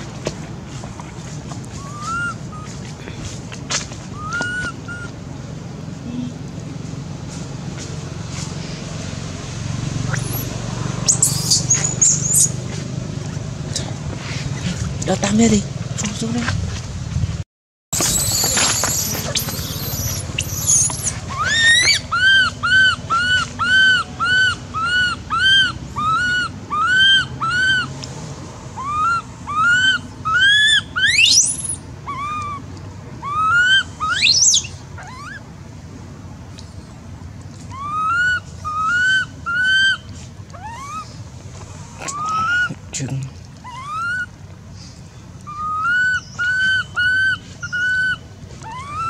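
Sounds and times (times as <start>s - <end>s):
young monkey crying: 1.7s - 5.2s, 10.1s - 13.4s, 18.0s - 28.0s, 28.7s - 35.6s, 37.6s - 41.3s, 41.9s - 44.5s, 45.4s - 49.0s
monkey shrieks: 1.8s - 2.7s, 3.7s - 5.2s, 10.1s - 12.6s, 18.0s - 27.9s, 28.8s - 32.6s, 33.2s - 35.4s, 37.7s - 41.2s, 42.0s - 42.8s, 43.6s - 44.4s, 45.5s - 49.0s.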